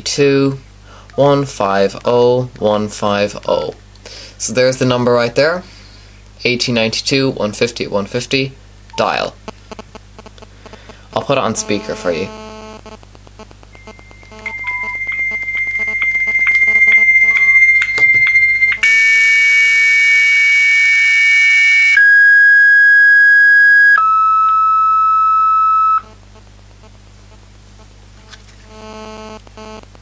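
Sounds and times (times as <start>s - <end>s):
dial-up modem handshake: 9.0s - 19.0s
low interference buzz: 9.0s - 22.2s, 23.9s - 30.0s.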